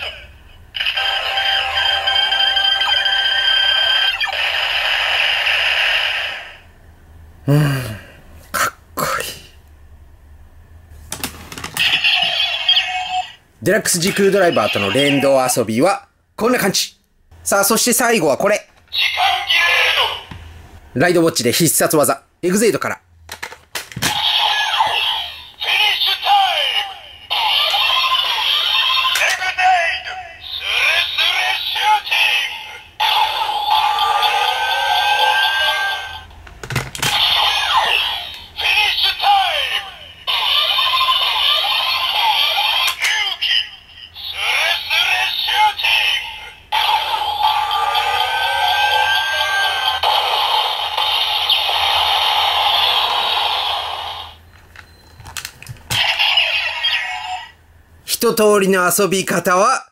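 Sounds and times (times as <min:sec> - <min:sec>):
toy recorded voice calls: 0:00.0 - 0:06.6, 0:11.8 - 0:15.7, 0:18.8 - 0:20.4, 0:24.0 - 0:36.3, 0:37.0 - 0:54.4, 0:55.9 - 0:57.6
toy electronic music: 0:00.8 - 0:04.8, 0:30.6 - 0:36.2, 0:46.8 - 0:50.4.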